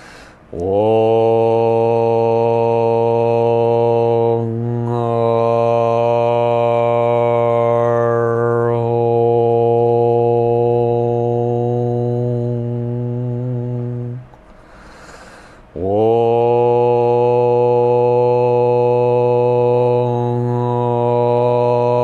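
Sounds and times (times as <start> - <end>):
man chanting on a low note: 0.5 - 14.3, 15.7 - 22.0.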